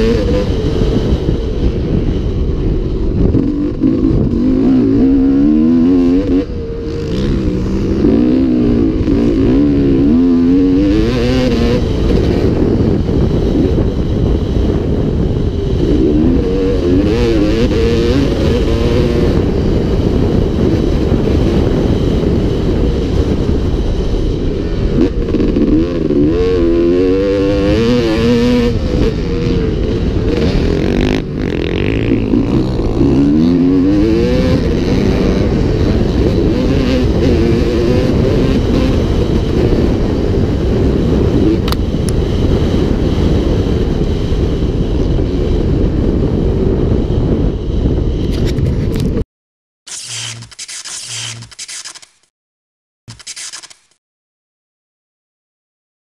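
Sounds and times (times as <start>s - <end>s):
motocross bike engine revving: 0.0s - 1.4s, 2.0s - 42.0s, 49.9s - 52.0s.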